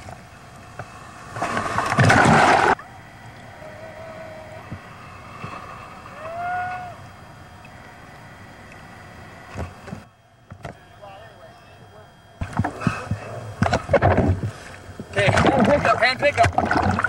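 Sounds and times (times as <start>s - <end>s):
faint wavering tones: 2.7s - 15.2s.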